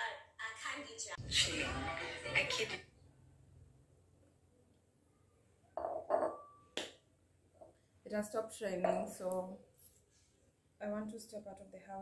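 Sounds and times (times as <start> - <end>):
glass knocking on tabletop: 5.8 - 6.5.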